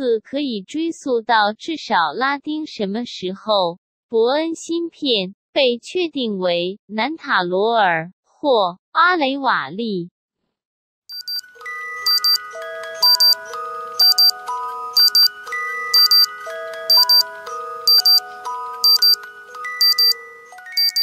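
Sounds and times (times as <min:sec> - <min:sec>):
steady electronic ticks: 0:11.1 - 0:11.4, 0:12.1 - 0:12.4, 0:13.0 - 0:13.4, 0:14.0 - 0:14.4, 0:15.0 - 0:19.2, 0:19.8 - 0:20.2, 0:20.8 - 0:21.0
bell-like electronic jingle: 0:11.1 - 0:21.0.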